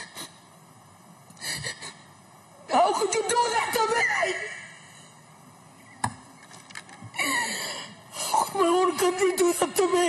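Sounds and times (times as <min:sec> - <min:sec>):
woman sobbing: 0:01.4 - 0:02.1, 0:07.1 - 0:09.4.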